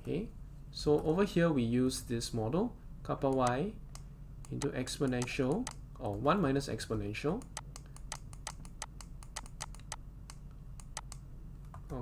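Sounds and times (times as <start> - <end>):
faint low hum: 0.0 - 12.0
computer input device clicking: 3.3 - 6.2, 7.4 - 11.2.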